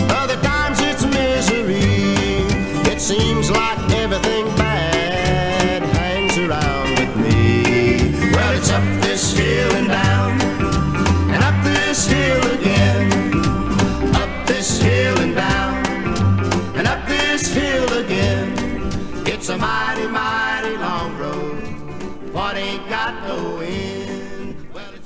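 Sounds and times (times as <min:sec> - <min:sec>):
person singing: 0:00.0 - 0:13.3, 0:14.0 - 0:25.0
country band with guitar: 0:00.0 - 0:25.0.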